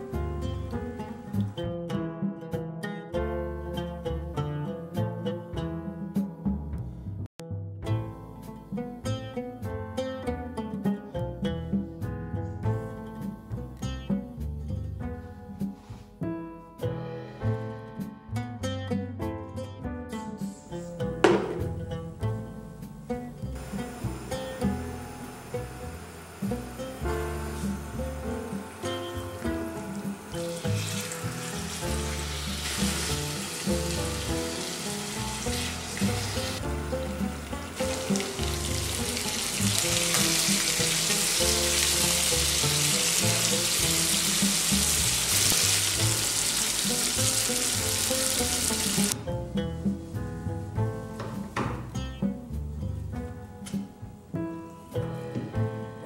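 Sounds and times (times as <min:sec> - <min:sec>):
background music: 0:00.0 - 0:56.0
chicken sizzling in a pan: 0:23.6 - 0:49.2.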